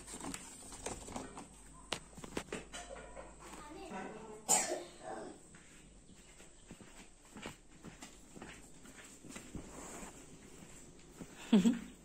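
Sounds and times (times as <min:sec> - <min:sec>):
person coughing: 0:04.5 - 0:05.0.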